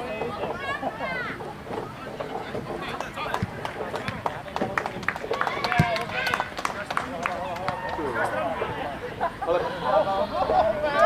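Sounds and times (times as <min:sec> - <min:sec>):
outdoor ambience: 0:00.0 - 0:11.0
sharp thump: 0:03.4 - 0:04.2.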